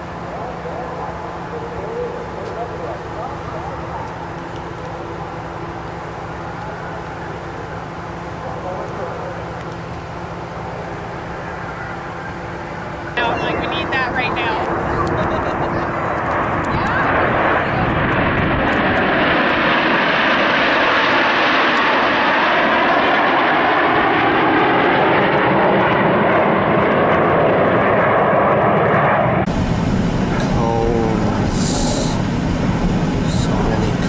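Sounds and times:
jet engines flying overhead: 0.0 - 34.0
low rumble: 0.0 - 34.0
brief voices: 30.3 - 32.2.

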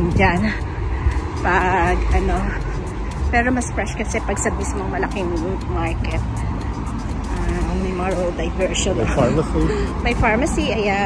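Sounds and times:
car engines running: 0.0 - 11.0
cars passing: 0.0 - 11.0.

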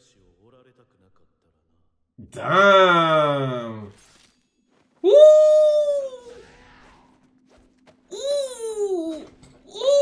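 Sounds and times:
man shouting excitedly: 2.2 - 3.9.

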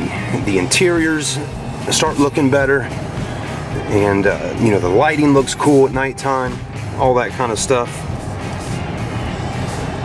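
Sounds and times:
car engine: 0.0 - 10.0
rock music from car radio: 0.0 - 10.0.

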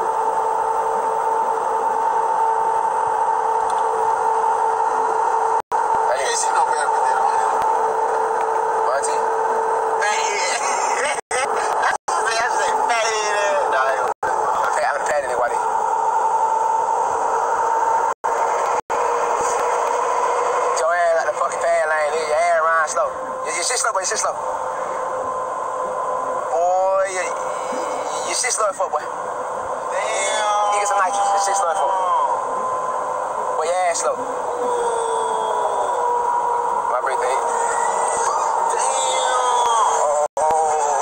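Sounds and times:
in-cabin road noise: 0.0 - 35.0.

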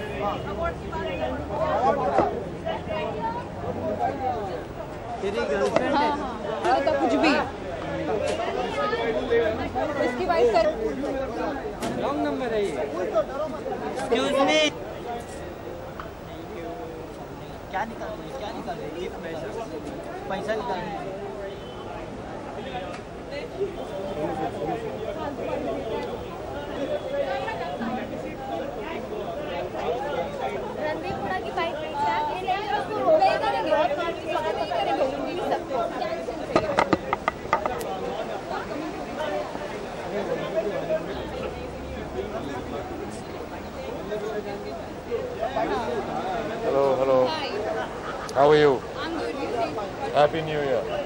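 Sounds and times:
background chatter of voices: 0.0 - 51.0
people talking: 0.0 - 51.0.

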